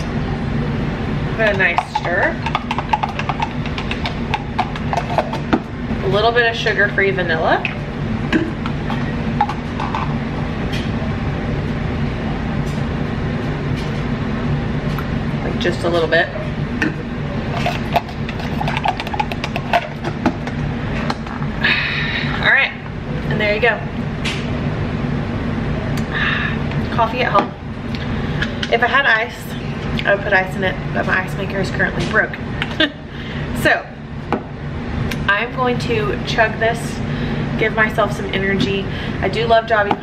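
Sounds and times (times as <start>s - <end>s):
kitchen appliance humming: 0.0s - 13.0s, 14.9s - 22.5s.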